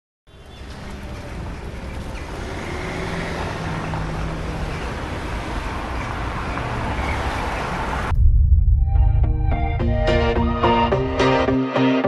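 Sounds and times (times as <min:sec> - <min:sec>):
road and engine noise: 0:00.3 - 0:08.1
passing vehicles humming: 0:00.3 - 0:08.2.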